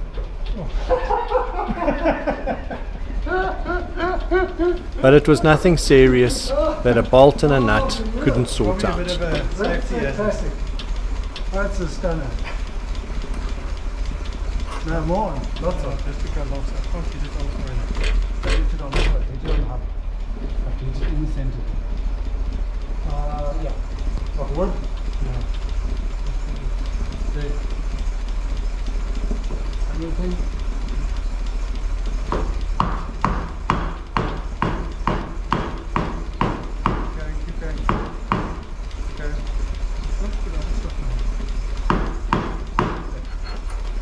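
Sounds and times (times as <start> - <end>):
car engine idling: 0.0 - 44.0
men laughing heartily: 0.8 - 5.7.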